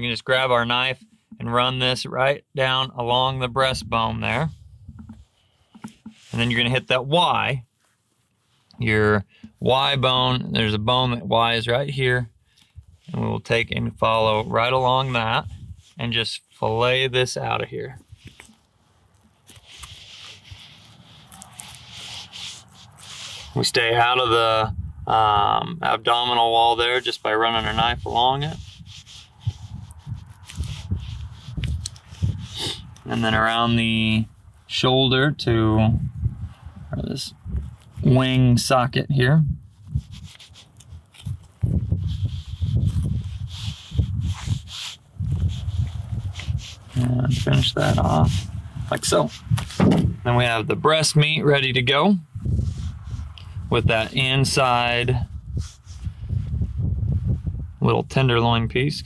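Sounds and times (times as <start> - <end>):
knife scraping along bone: 18.1 - 23.6, 27.0 - 33.3, 39.9 - 50.0
knife cutting bird carcass: 18.3 - 23.6, 49.3 - 50.1.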